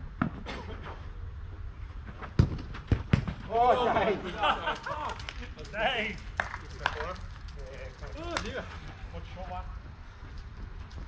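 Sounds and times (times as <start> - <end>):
soccer ball kicks: 2.1 - 3.5.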